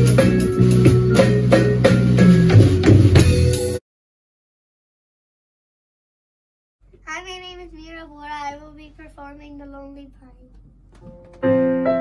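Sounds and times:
girl's voice on long pitches: 7.0s - 10.6s.

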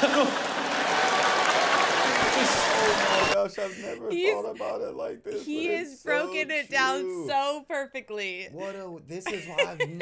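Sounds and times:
audience applauding: 0.0s - 3.4s.

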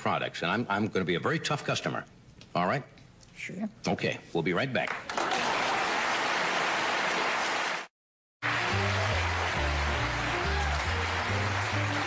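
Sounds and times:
studio audience applauding: 4.9s - 12.0s
big band playing: 8.4s - 12.0s.

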